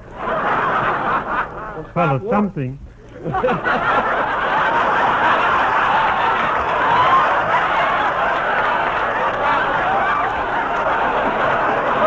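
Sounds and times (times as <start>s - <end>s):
studio audience laughing: 0.1s - 2.2s, 3.1s - 12.0s.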